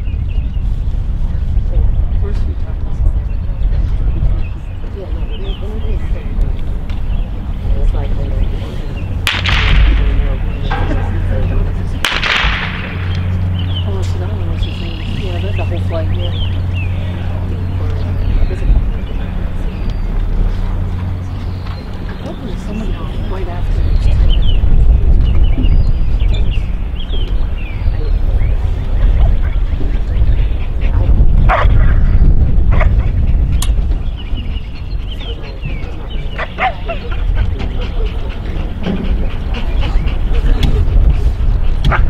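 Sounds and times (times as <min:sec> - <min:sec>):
loud low rumble: 0:00.0 - 0:42.0
pistol shot echoing: 0:09.3 - 0:11.3, 0:12.0 - 0:13.4
dog barking: 0:36.4 - 0:37.0.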